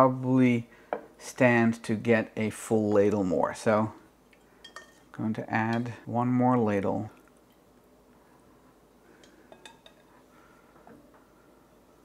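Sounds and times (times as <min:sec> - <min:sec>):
ladle clinking on saucepan: 0:04.6 - 0:05.1, 0:09.5 - 0:10.1.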